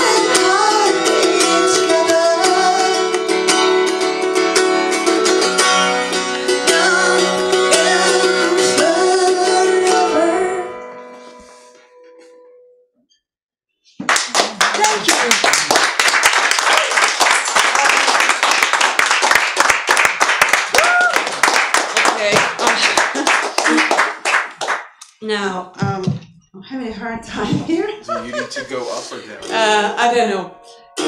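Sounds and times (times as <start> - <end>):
audience applauding and cheering: 14.0 - 24.9
person whooping: 20.7 - 21.4
person speaking: 27.4 - 30.4.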